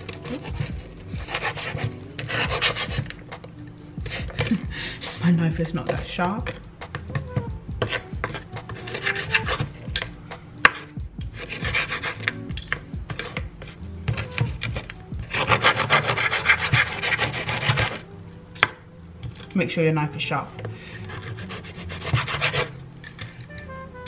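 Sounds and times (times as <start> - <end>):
knife sawing through crackling: 0.0 - 3.2, 4.0 - 5.3, 7.8 - 18.0, 20.9 - 22.8
knife scraping cutting board: 0.0 - 18.0, 20.6 - 23.5.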